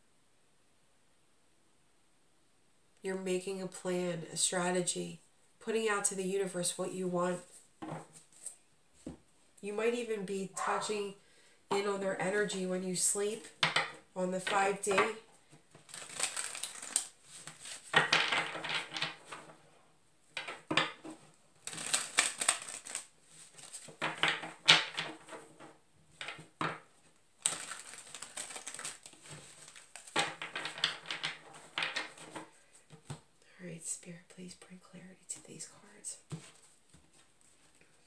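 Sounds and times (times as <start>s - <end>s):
cards being shuffled: 14.5s - 19.5s, 20.4s - 26.6s, 27.4s - 33.2s.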